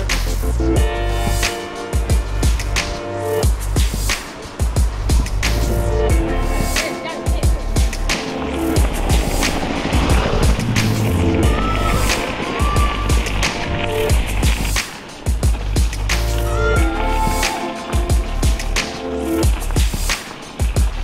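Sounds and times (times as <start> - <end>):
background music: 0.0 - 21.0
bicycle tyres rolling on gravel: 3.4 - 21.0.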